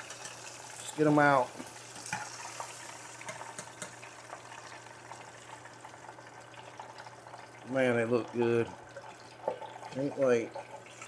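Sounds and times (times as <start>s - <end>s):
deep fryer oil bubbling: 0.0s - 11.0s.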